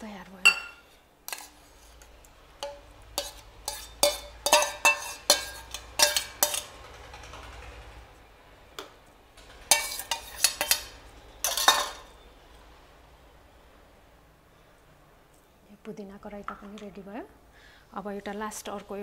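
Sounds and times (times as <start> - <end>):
spoon clinking against steel bowls: 0.4 - 6.8, 9.7 - 12.2.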